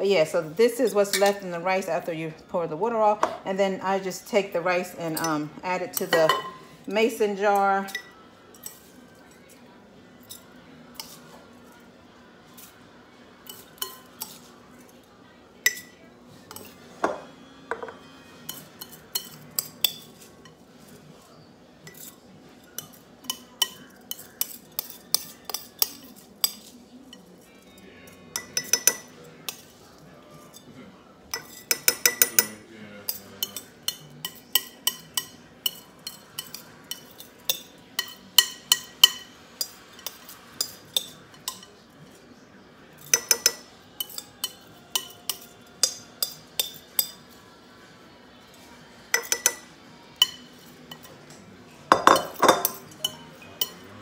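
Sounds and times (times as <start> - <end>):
metal spoon clinking on glass bowl: 6.0 - 6.6, 17.7 - 20.3, 21.9 - 29.7, 31.3 - 41.8, 43.0 - 47.3, 49.1 - 51.3, 51.9 - 53.9.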